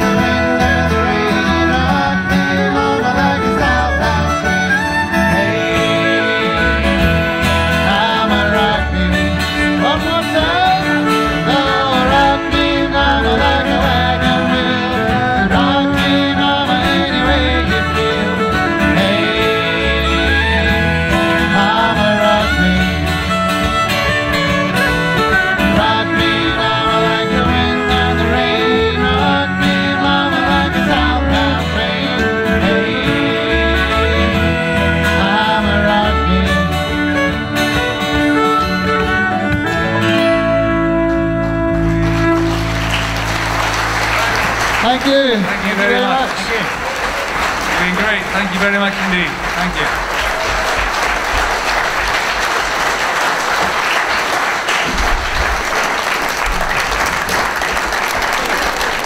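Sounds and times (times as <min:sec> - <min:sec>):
banjo: 0:00.0 - 0:44.9
fiddle: 0:00.0 - 0:47.2
acoustic guitar: 0:00.0 - 0:59.0
voices singing along: 0:09.8 - 0:22.7, 0:25.5 - 0:36.4.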